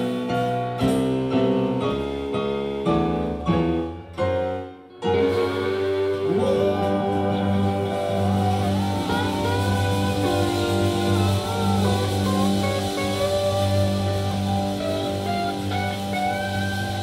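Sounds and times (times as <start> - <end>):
live band playing: 0.0 - 17.0
lead guitar bending notes: 3.4 - 17.0.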